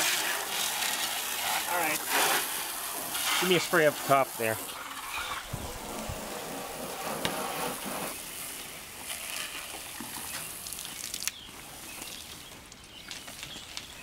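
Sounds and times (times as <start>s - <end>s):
hose water spraying on car: 0.0s - 14.0s.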